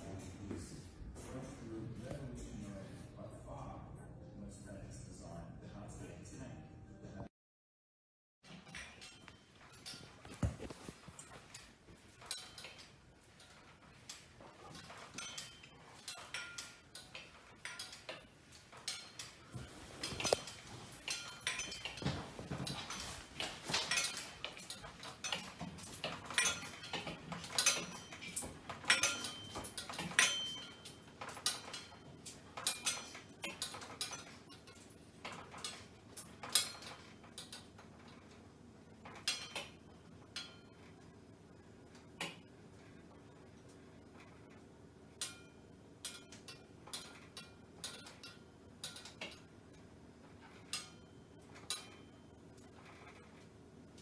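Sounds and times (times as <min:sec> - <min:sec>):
dishes and utensils clinking: 0:08.5 - 0:38.3, 0:39.0 - 0:41.1, 0:45.2 - 0:49.5, 0:50.3 - 0:53.4.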